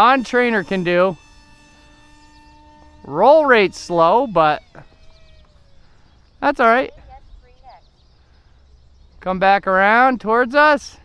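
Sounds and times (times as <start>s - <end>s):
model plane motor whine: 0.0s - 8.8s.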